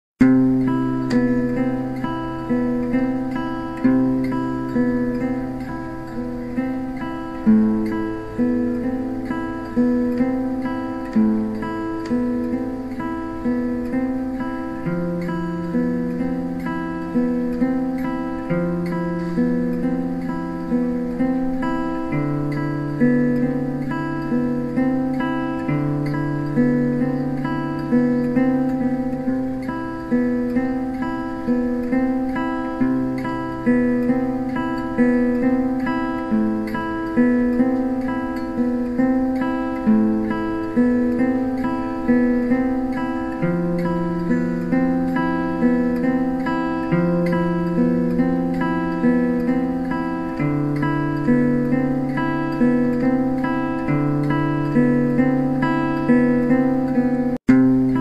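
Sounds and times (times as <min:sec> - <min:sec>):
acoustic guitar picking chords: 0:00.0 - 0:58.0.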